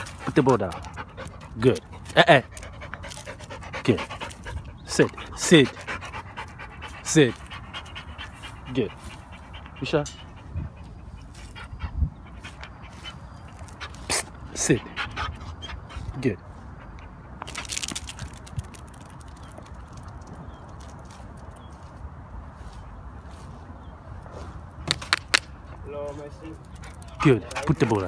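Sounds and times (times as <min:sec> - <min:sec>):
faint outdoor hiss: 0:00.0 - 0:28.0.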